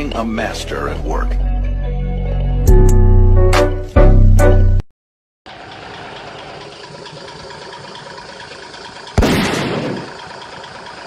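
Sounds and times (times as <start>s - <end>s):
engine-like rumble: 5.5s - 11.0s
loud blast: 9.2s - 10.2s.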